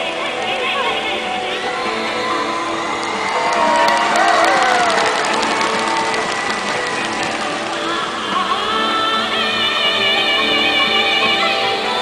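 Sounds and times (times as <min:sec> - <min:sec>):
woman's wordless folk-opera vocal: 0:00.0 - 0:03.0, 0:07.8 - 0:12.0
traditional instrumental ensemble: 0:00.0 - 0:12.0.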